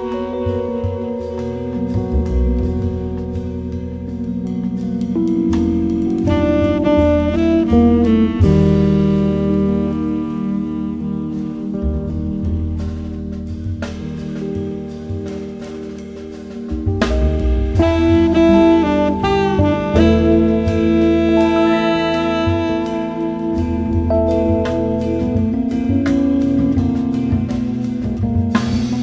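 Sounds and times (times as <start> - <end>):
jazz saxophone with band: 0.0 - 29.0.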